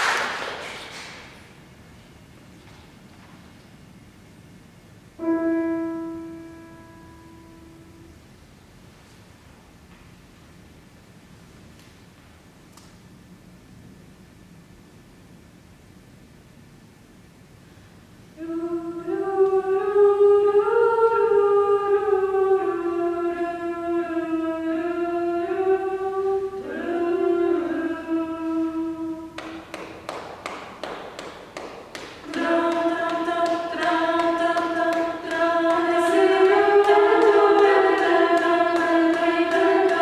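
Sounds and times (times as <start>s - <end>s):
women singing a cappella: 18.4s - 29.4s, 32.2s - 40.0s.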